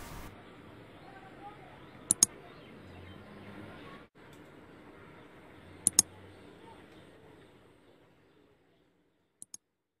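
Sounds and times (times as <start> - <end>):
faint background noise: 0.0 - 9.6
click sound effects: 2.1 - 2.3, 5.8 - 6.1, 9.4 - 9.6.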